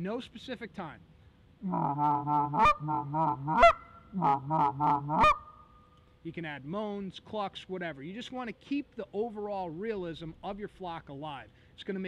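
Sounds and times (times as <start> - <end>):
goose call rolling chatter: 1.6 - 5.5
sharp high goose call clucks: 1.6 - 5.7.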